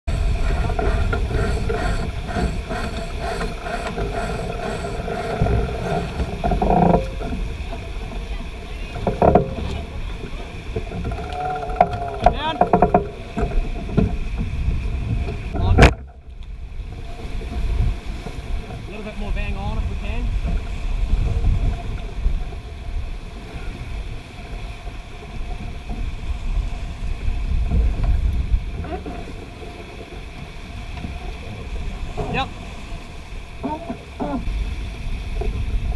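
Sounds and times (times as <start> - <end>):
water rushing along a hull: 0.0 - 35.9
wind buffeting microphone: 0.1 - 35.9.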